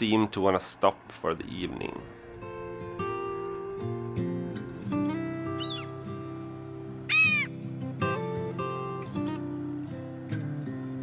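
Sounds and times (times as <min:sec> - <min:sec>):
acoustic guitar music: 0:00.0 - 0:11.0
bird call rising and falling: 0:05.5 - 0:06.0, 0:07.0 - 0:07.6.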